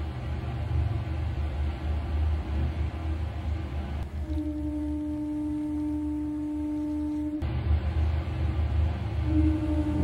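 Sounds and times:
pure held tone: 4.2s - 7.4s.

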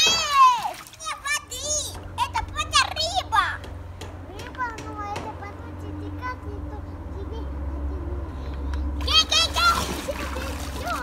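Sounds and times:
children calling and chattering: 0.0s - 11.0s.

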